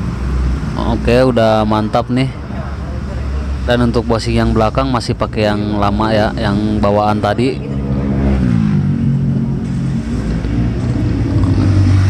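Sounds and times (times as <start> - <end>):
motor vehicle engine running: 0.0 - 12.0.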